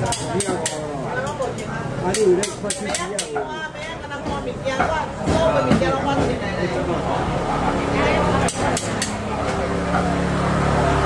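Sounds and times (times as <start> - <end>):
people talking: 0.0 - 10.3.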